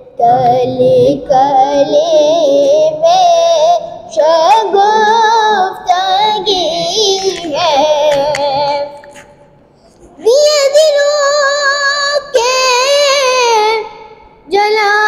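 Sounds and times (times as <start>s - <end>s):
boy singing solo: 0.0s - 9.0s, 10.2s - 15.0s.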